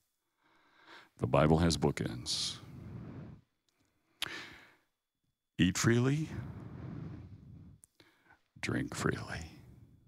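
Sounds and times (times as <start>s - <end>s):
man breathing into microphone: 2.6s - 3.6s, 4.2s - 4.9s, 6.3s - 8.5s.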